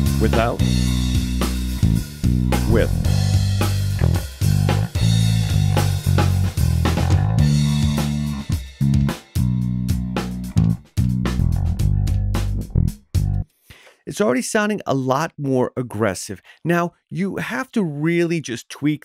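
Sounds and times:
drum kit: 0.0s - 13.4s
electric bass guitar: 0.0s - 13.4s.

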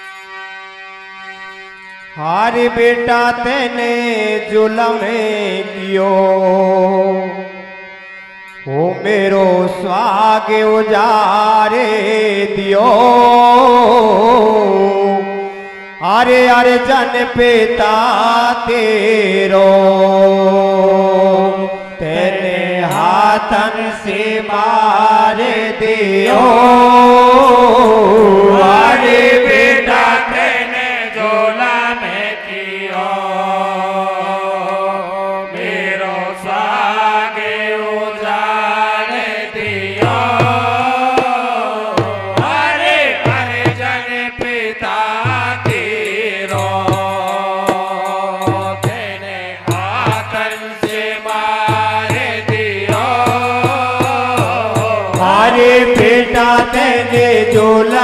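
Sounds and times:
harmonium drone: 0.0s - 58.0s
man singing long wavering notes: 8.6s - 32.5s, 39.2s - 58.0s
hand drum beat: 39.9s - 44.6s, 45.2s - 58.0s.

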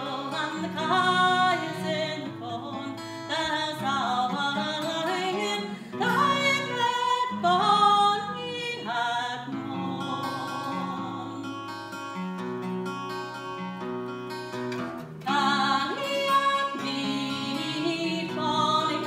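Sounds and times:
woman singing lullaby: 0.0s - 11.5s
fingerpicked acoustic guitar: 0.0s - 19.0s.

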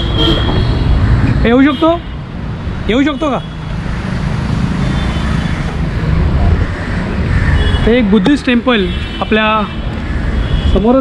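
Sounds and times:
low rumble of city traffic: 0.0s - 11.0s.

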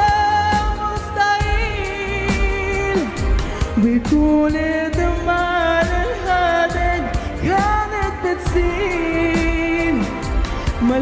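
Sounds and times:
backing music with steady beat: 0.0s - 11.0s
woman singing into microphone: 0.0s - 11.0s.

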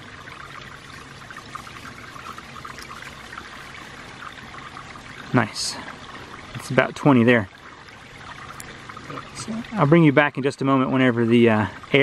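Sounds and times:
creek water rushing: 0.0s - 12.0s.

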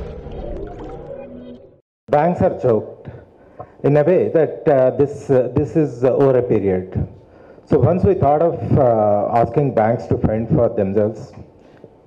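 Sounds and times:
electronic jingle: 0.0s - 1.8s.

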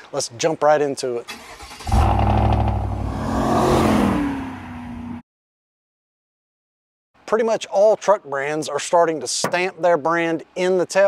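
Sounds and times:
pickup engine starting and revving: 1.3s - 5.2s.

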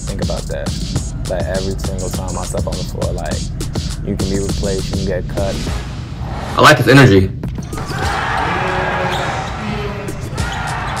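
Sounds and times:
crowd noise: 7.6s - 11.0s.

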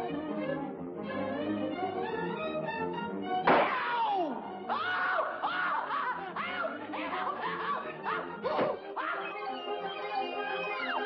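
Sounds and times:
orchestral cartoon music: 0.0s - 11.0s.

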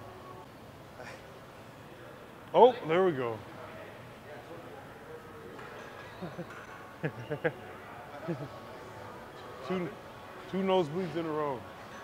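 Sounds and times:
low room noise: 0.0s - 12.0s
faint distant voices: 0.3s - 12.0s.

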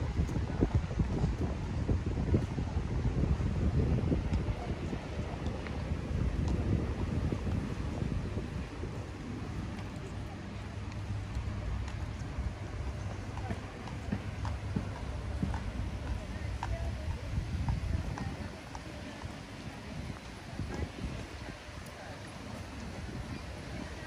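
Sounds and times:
footsteps on cobblestones: 0.0s - 24.0s
wind rumble on microphone: 0.0s - 24.0s.

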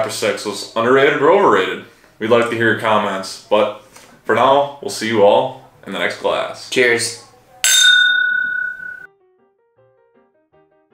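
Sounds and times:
faint music: 0.0s - 9.1s
glasses clinking: 7.6s - 9.1s.

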